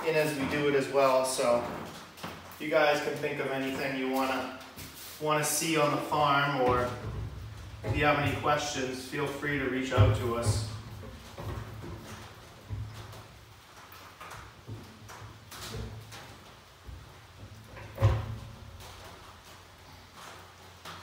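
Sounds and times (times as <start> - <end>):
wooden frames knocking on metal: 6.6 - 8.8.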